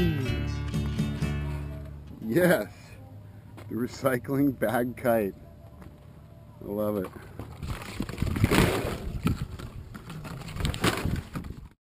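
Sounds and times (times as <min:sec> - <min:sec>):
gusty wind on microphone: 0:07.6 - 0:11.8.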